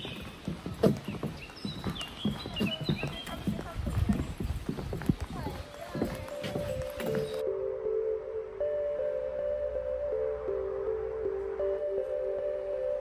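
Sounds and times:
birds singing: 0.0s - 7.4s
footsteps on wooden boardwalk: 0.0s - 7.4s
music: 6.0s - 13.0s.

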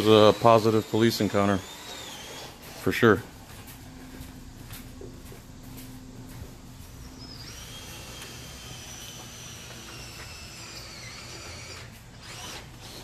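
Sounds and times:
small motor whining: 0.0s - 2.9s, 6.9s - 13.0s.

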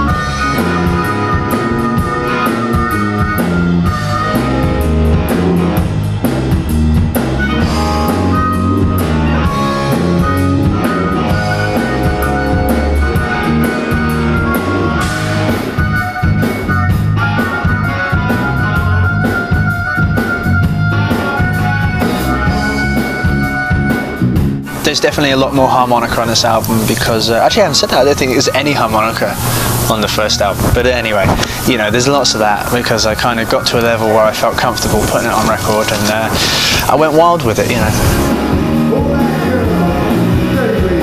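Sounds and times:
drum kit beat: 0.0s - 41.0s
electric guitar: 0.0s - 41.0s.

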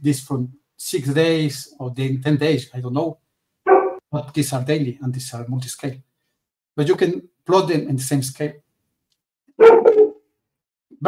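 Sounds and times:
dog barking: 3.7s - 4.0s, 9.6s - 10.2s.

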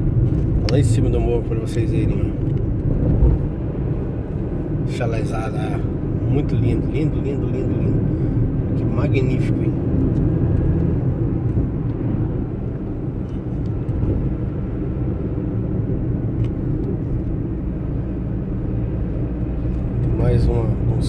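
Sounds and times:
car engine and tyre drone: 0.0s - 21.0s.

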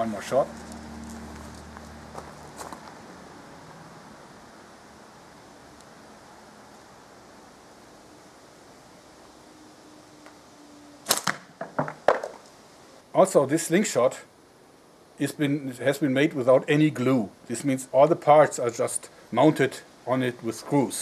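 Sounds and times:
slingshot rubber bands cracking: 11.1s - 11.5s.

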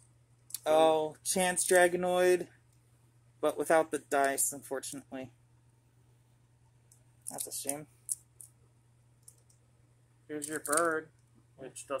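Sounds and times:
quiet steady hum: 0.0s - 12.0s
plastic figures clicking: 10.4s - 11.0s.

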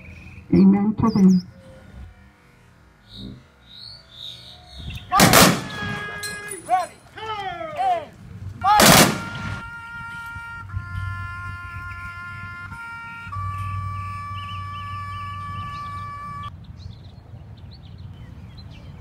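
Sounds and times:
rifle volley crack: 5.1s - 9.6s
long held musical notes: 9.6s - 16.5s.

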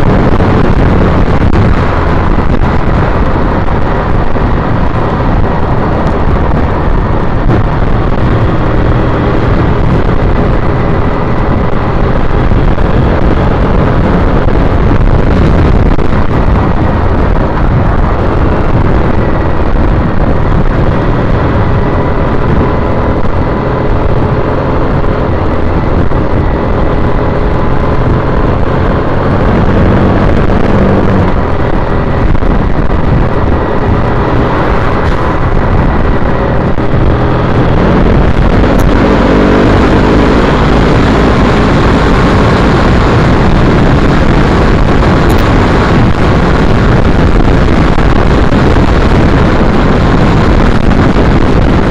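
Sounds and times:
motorcycle engine running: 0.0s - 51.9s
wind rush on microphone: 0.0s - 51.9s.

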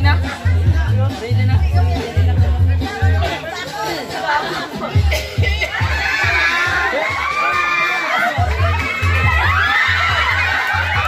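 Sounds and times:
crowd chatter: 0.0s - 11.0s
dance music with bass beat: 0.0s - 11.0s.

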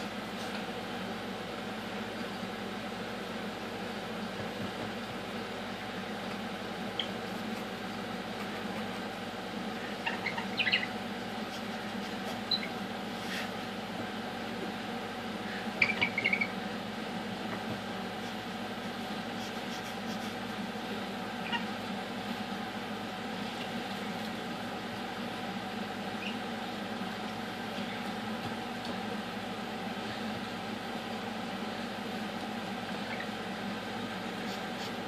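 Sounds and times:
room hum: 0.0s - 35.0s
parrot squeaky chirps: 9.9s - 11.0s, 12.5s - 12.8s, 15.8s - 16.6s, 21.4s - 21.7s, 26.2s - 26.4s, 33.0s - 33.4s.

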